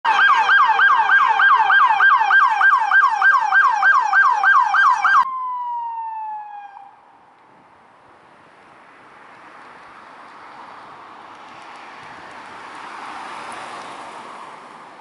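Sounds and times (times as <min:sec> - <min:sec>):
police siren yelping: 0:00.1 - 0:07.0.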